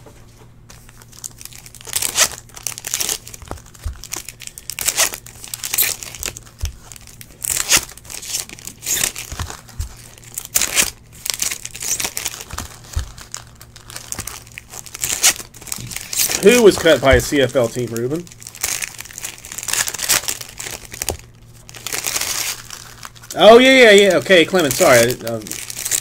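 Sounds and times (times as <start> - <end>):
wrappers crinkling and tearing: 0.7 - 26.0.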